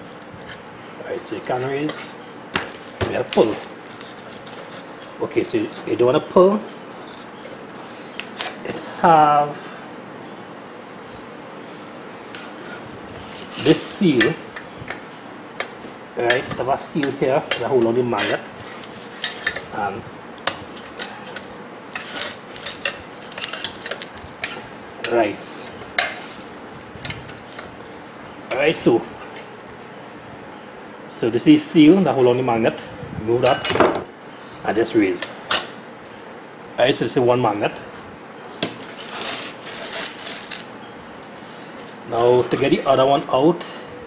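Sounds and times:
screwdriver scraping and clicking metal: 3.3s - 6.0s, 20.4s - 24.6s
rubbing and scraping on cardboard: 38.9s - 40.6s.

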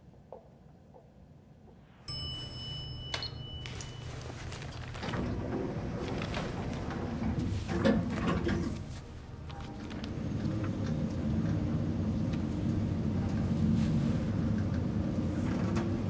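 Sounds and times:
lift chime: 2.1s - 6.7s
low steady hum: 2.1s - 16.0s
lift doors sliding open: 3.2s - 16.0s
knocks and rustling: 3.6s - 10.3s.

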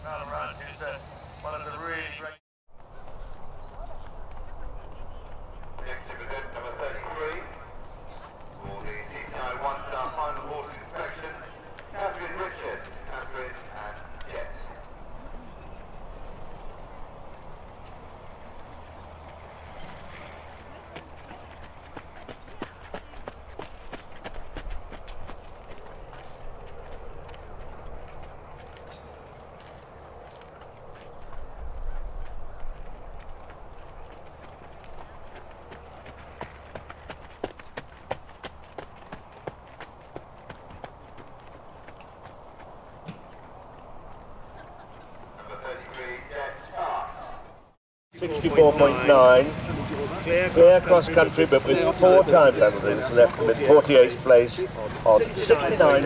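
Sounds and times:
running footsteps: 1.2s - 47.4s
hoofbeats on gravel: 2.8s - 44.2s.

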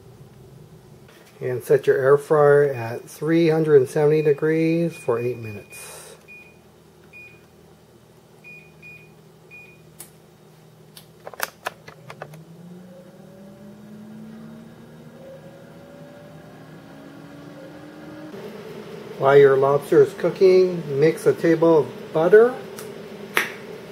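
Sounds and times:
air fryer fan motor humming: 0.0s - 11.0s, 12.0s - 23.9s
touch-panel beeps: 4.1s - 7.5s, 8.4s - 9.8s.

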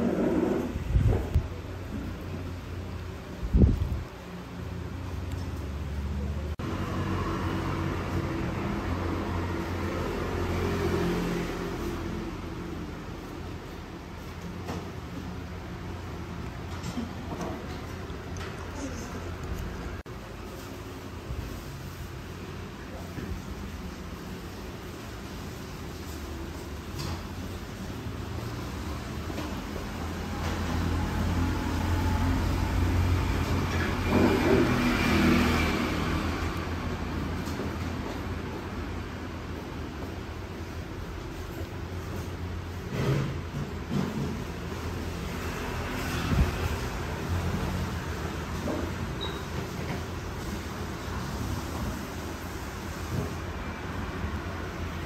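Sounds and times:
vehicle engine rumble passing: 5.8s - 13.8s, 28.1s - 39.1s.

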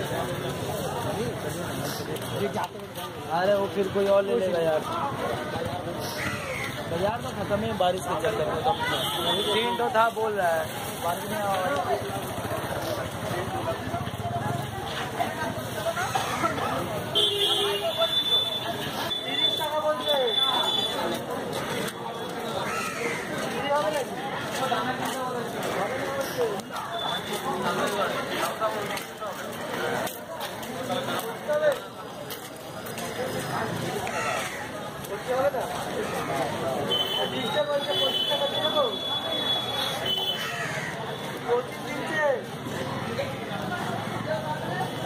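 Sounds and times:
people talking: 0.0s - 45.0s.

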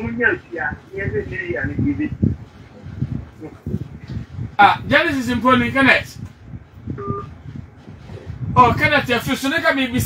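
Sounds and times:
low room rumble: 0.0s - 10.0s.

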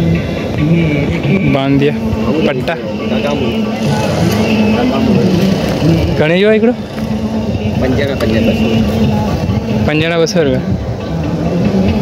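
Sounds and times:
people talking: 0.6s - 11.1s.

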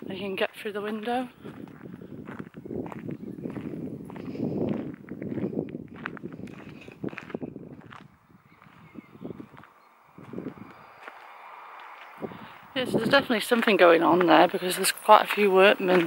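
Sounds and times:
footsteps on gravel: 0.0s - 16.0s.

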